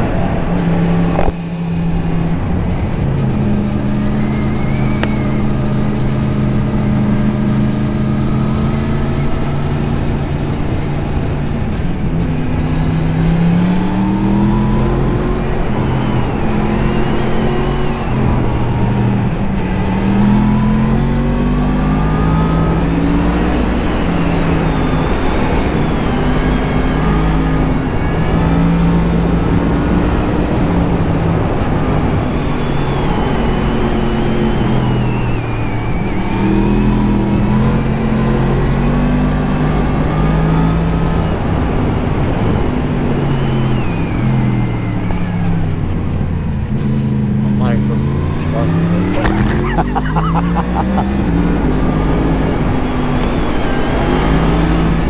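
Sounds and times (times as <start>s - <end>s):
motorcycle engine revving: 0.0s - 55.0s.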